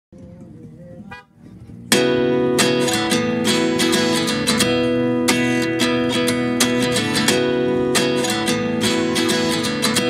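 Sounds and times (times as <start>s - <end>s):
motorcycle engine humming: 0.2s - 10.0s
strummed acoustic guitar music: 0.2s - 10.0s
horn beep: 1.0s - 1.4s.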